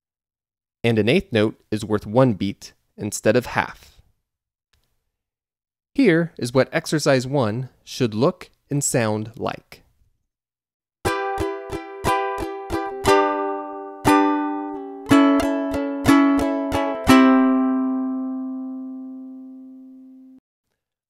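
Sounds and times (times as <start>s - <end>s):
ukulele strumming: 11.0s - 20.4s.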